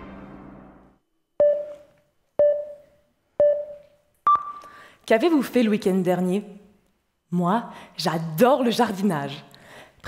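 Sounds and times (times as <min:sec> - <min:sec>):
electronic countdown beeps: 0:01.4 - 0:04.7.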